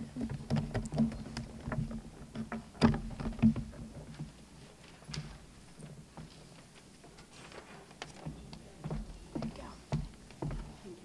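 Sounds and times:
knocks and taps on wooden lectern: 0.0s - 4.4s, 8.0s - 10.8s.

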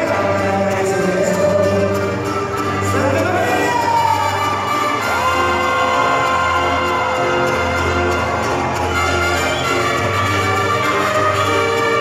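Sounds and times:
live mariachi band music: 0.0s - 12.0s
crowd cheering: 1.9s - 12.0s.

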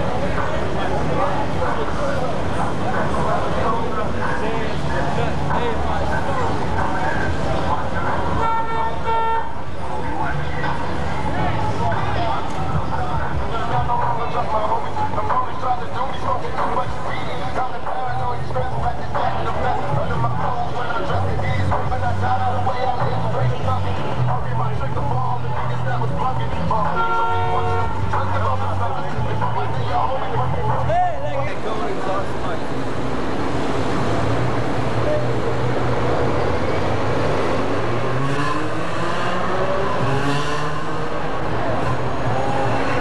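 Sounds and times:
crowd voices: 0.0s - 43.0s
street noise: 0.0s - 43.0s
car horn toots: 8.4s - 9.6s, 26.9s - 28.1s
bass-heavy music from car stereos: 10.2s - 32.5s.

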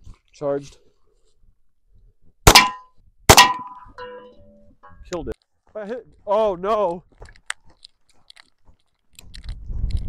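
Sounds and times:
pistol shots with metallic ring: 2.5s - 4.4s.

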